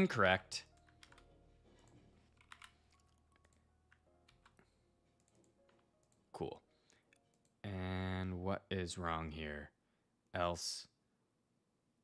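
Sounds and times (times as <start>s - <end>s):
keyboard typing: 0.6s - 6.4s.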